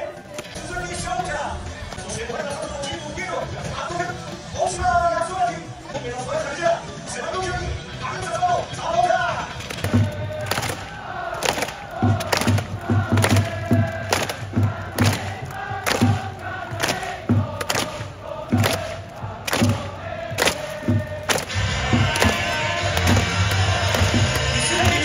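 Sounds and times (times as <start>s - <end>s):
crowd singing or chanting: 0.0s - 5.3s, 8.8s - 25.0s
rushing crowd noise: 0.0s - 25.0s
stadium music with pounding drumbeat: 0.0s - 25.0s.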